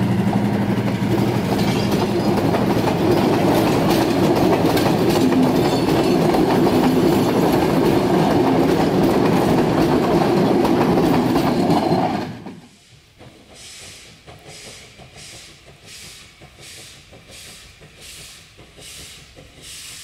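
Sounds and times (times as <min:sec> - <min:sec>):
train wheels clattering on rails: 0:00.0 - 0:20.0.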